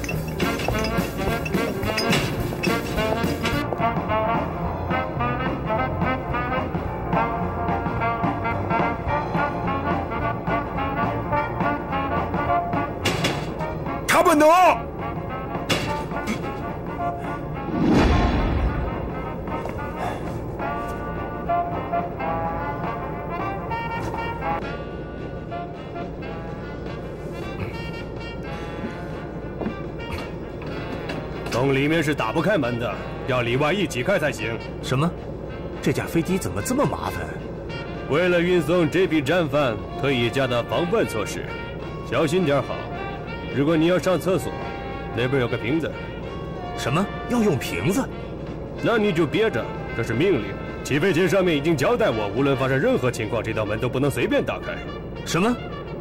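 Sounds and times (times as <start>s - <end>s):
dramatic orchestral music with brass: 0.0s - 56.0s
heavy deep thump: 17.6s - 19.9s.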